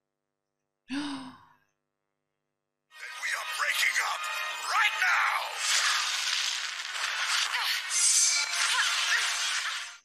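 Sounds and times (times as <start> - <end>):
woman sighing: 0.9 - 1.6.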